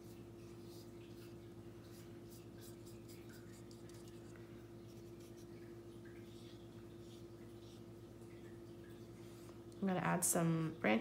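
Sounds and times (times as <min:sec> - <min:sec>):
paintbrush strokes on paper: 0:00.0 - 0:05.6
low electrical hum: 0:00.0 - 0:11.0.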